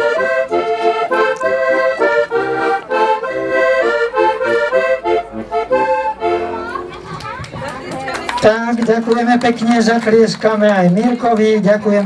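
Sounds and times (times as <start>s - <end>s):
accordion chord: 0.0s - 7.0s
people chattering: 0.0s - 12.0s
sharp claps: 7.1s - 12.0s.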